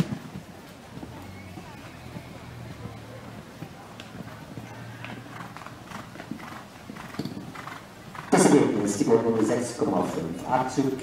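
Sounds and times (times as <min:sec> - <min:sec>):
horse hoofbeats on sand: 0:00.0 - 0:11.0.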